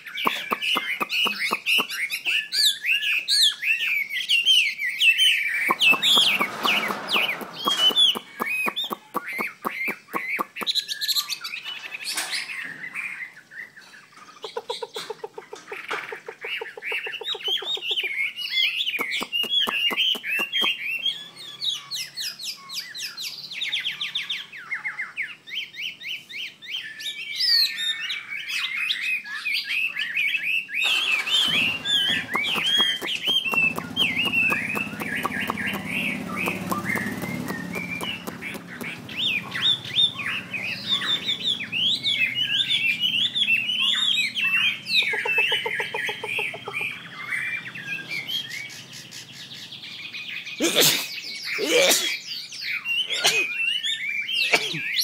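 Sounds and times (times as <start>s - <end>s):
bird singing whistled phrases: 0.0s - 11.6s, 17.0s - 49.4s.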